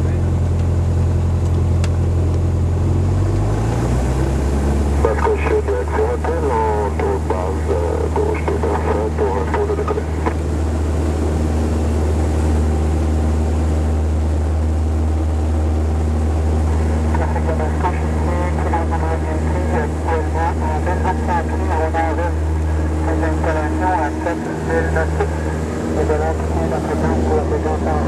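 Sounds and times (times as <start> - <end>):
light aircraft engine drone: 0.0 - 28.0
person talking: 16.8 - 28.0.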